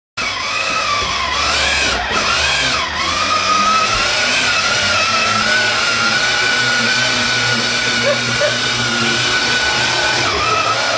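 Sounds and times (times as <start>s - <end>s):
toy motorcycle motor whine: 0.2s - 10.9s.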